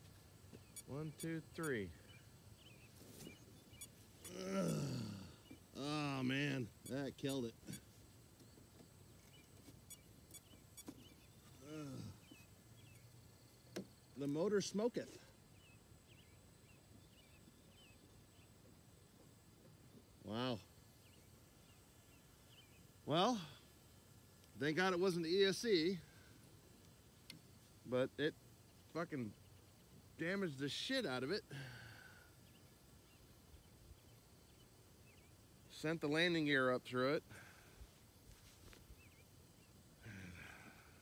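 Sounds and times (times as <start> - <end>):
faint high bird chirps: 0.6 - 7.9, 9.2 - 13.2.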